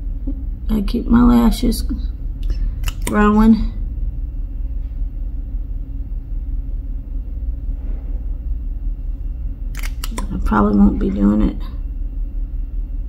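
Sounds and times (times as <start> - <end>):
low room rumble: 0.0 - 13.0.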